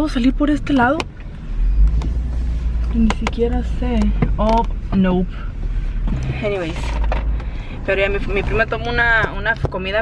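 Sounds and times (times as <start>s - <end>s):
vehicle engine and road rumble: 0.0s - 10.0s.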